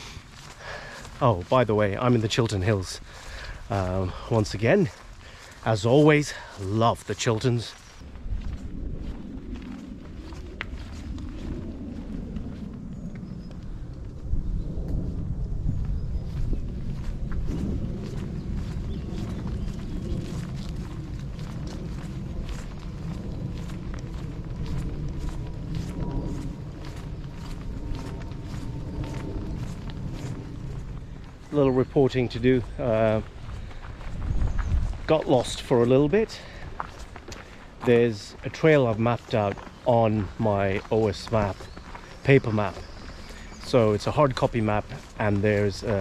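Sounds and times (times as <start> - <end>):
footsteps on earth path: 0.0 - 46.0
wind noise on microphone: 0.0 - 46.0.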